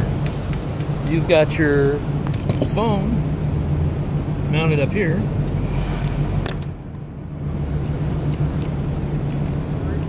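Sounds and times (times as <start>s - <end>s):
low hum of hall background: 0.0s - 10.0s.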